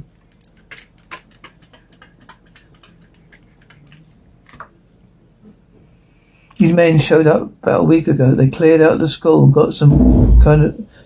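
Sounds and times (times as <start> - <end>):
faint irregular clicking and tapping: 0.2 - 5.6.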